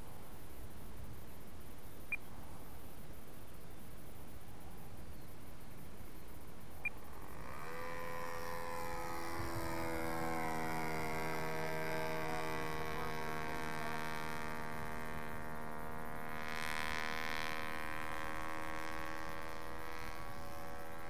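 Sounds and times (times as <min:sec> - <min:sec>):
model plane motor droning: 0:06.4 - 0:21.0.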